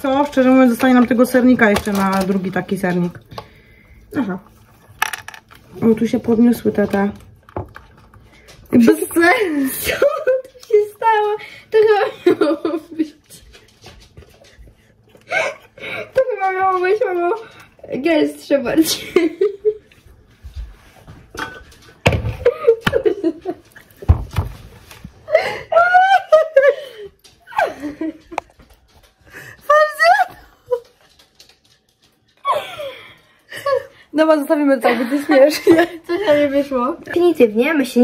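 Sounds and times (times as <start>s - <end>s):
women laughing: 9.3s - 10.6s, 11.7s - 13.2s, 18.8s - 20.0s, 22.4s - 23.8s, 25.2s - 28.5s, 32.4s - 34.1s, 34.9s - 36.6s.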